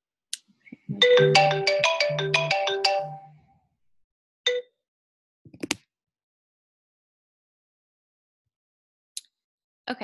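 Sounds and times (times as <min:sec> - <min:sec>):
ringtone melody: 0:00.9 - 0:03.5, 0:04.5 - 0:04.8.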